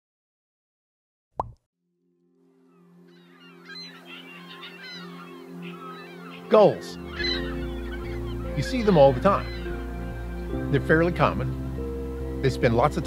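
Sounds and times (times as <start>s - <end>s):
sustained music chord: 2.0s - 13.0s
gulls calling: 3.0s - 13.0s.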